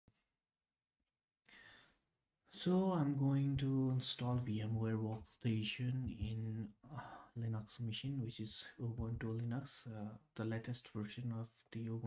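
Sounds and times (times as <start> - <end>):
soft intake of breath: 1.5 - 2.0.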